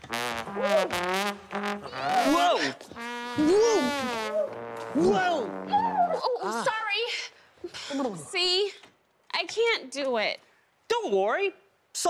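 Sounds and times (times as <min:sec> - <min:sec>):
person exclaiming: 0:01.9 - 0:02.8, 0:03.4 - 0:06.9.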